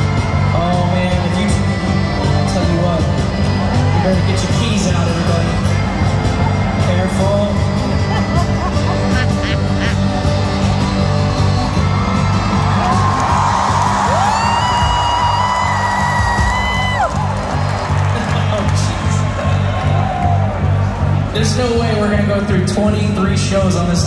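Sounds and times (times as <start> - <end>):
music with steady beat: 0.0 - 23.4
crowd cheering and chattering: 0.0 - 24.0.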